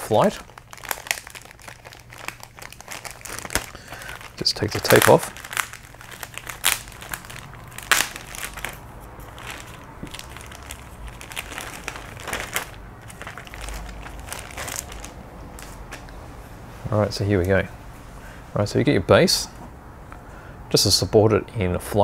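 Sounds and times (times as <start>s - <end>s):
plastic bag crinkling: 0.0s - 16.1s.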